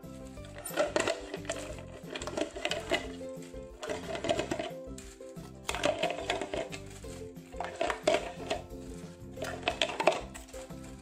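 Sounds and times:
background music: 0.0 - 11.0
plastic bottle crackling: 0.0 - 11.0.

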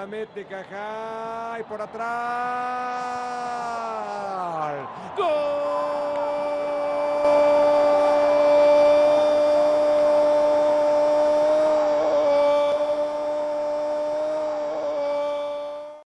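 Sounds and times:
stadium crowd noise: 0.0 - 16.0
commentator's long goal cry: 3.1 - 16.0.

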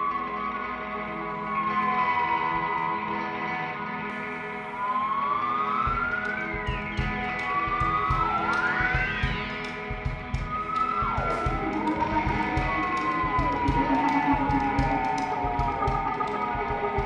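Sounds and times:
electric guitar drone: 0.0 - 17.0.

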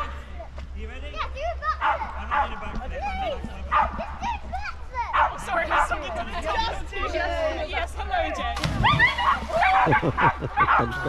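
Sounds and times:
dog barking and yipping: 1.8 - 2.6, 3.7 - 4.2, 5.1 - 6.0.

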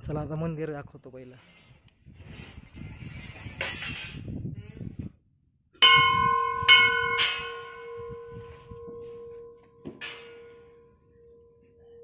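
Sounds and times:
brass bell ringing: 5.8 - 11.0.

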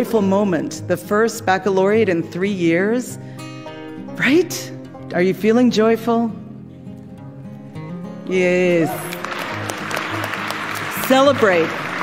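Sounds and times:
background music with low notes: 0.0 - 12.0
audience applauding: 8.8 - 12.0.

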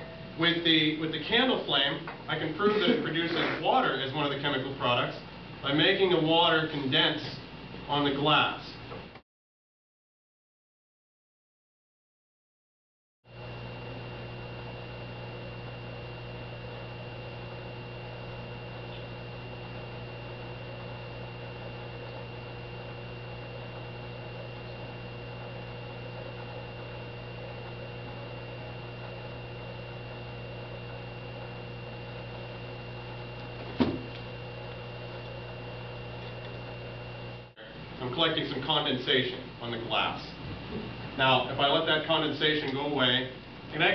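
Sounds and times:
faint high whine: 0.0 - 9.0, 13.3 - 40.4
low electrical hum: 0.0 - 9.2, 13.3 - 43.9.

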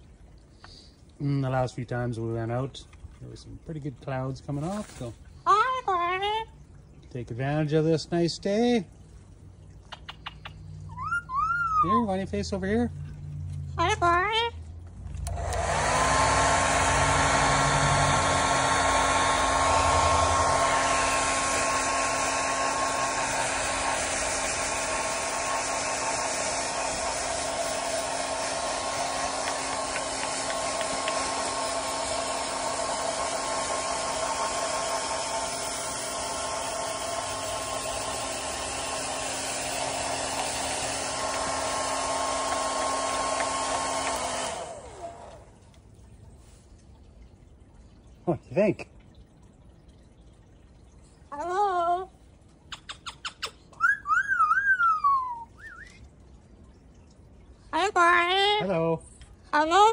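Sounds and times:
electric blower whining: 15.2 - 45.5.

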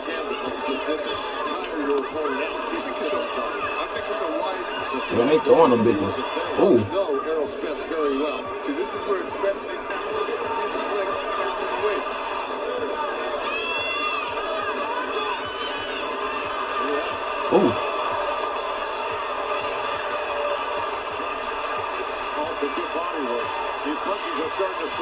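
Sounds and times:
arena crowd noise: 0.0 - 25.0
music: 0.0 - 25.0
commentators talking: 5.1 - 6.9, 17.5 - 17.8.

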